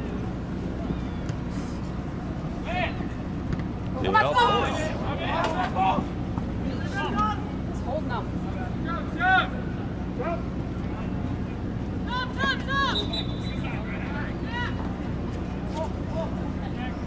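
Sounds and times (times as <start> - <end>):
players and spectators shouting: 4.0 - 7.6, 12.0 - 14.9.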